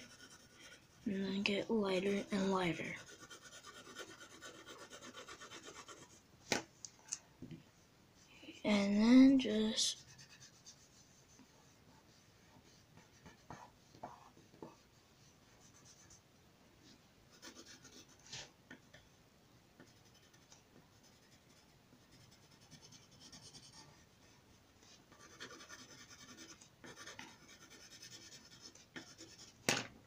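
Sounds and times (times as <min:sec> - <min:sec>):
pencil scratching on paper: 0:00.0 - 0:01.1, 0:02.0 - 0:06.2, 0:09.9 - 0:16.2, 0:17.3 - 0:18.5, 0:19.8 - 0:29.6.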